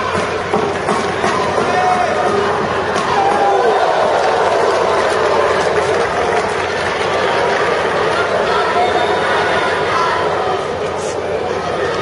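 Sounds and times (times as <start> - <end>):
indoor crowd din: 0.0 - 12.0.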